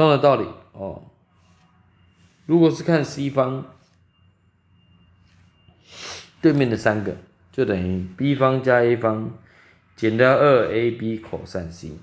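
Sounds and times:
thin steady high tone: 0.0 - 12.0
sharp intake of breath: 5.8 - 6.4, 9.4 - 10.0.

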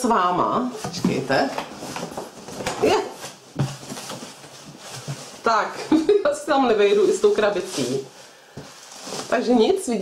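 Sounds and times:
cardboard box rustling: 0.8 - 5.7, 6.7 - 9.8.

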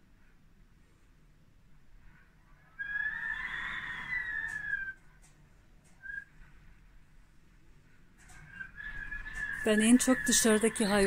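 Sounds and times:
wind whistling through shutters: 0.0 - 11.0.

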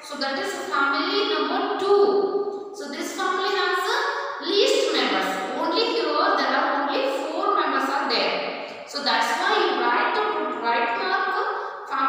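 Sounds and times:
woman talking: 0.0 - 2.2, 2.8 - 12.0.

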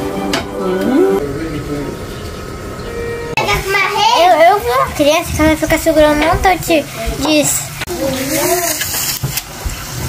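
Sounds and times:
voice holding wavering note: 0.0 - 1.4.

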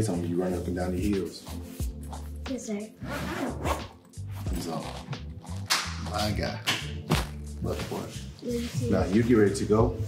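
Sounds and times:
background music: 0.0 - 10.0
zipper being pulled: 3.0 - 5.8.

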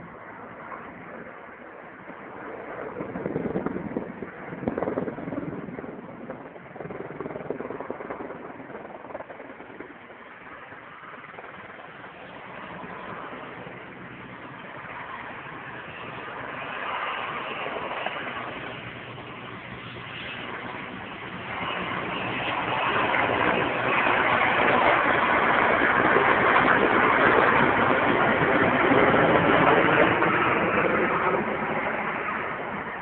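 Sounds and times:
helicopter engine and rotor drone: 0.0 - 33.0.

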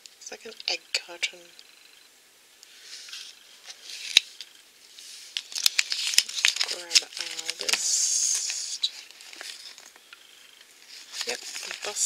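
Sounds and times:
paper leaflet rustling: 2.7 - 9.9, 10.8 - 12.0.

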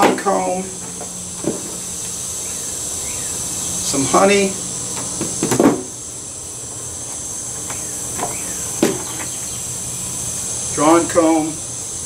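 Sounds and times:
steady high-pitched drone: 0.2 - 12.0.

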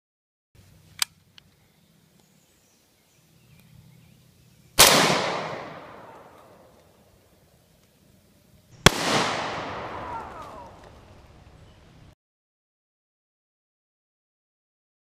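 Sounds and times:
rifle shots with rolling echo: 4.8 - 6.8, 8.8 - 11.1.

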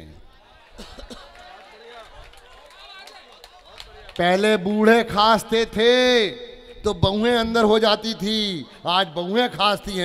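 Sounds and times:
faint audience chatter: 0.0 - 4.2.

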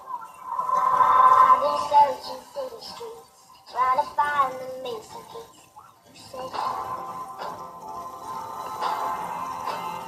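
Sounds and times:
person singing: 0.7 - 7.0
backing music: 6.2 - 10.0.

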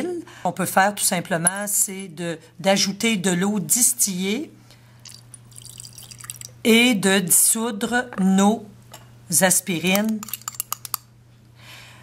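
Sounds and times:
glass rod clinking in beaker: 10.0 - 11.0.

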